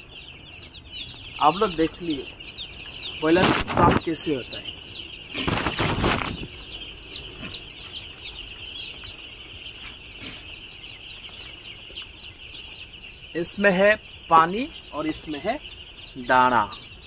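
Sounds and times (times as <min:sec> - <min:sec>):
chicks cheeping: 0:00.0 - 0:17.0
loud rustle: 0:03.3 - 0:04.1, 0:05.3 - 0:06.5.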